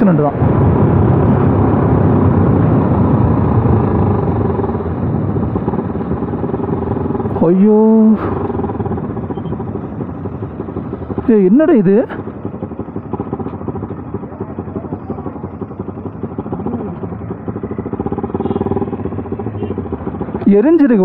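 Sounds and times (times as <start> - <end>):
wind rush on microphone: 0.0 - 11.2
motorcycle engine running: 0.0 - 21.0.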